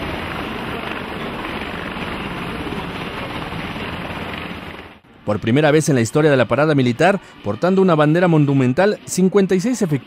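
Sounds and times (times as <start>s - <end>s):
helicopter rotor chop: 0.0s - 5.0s
constant rushing noise: 0.0s - 10.0s.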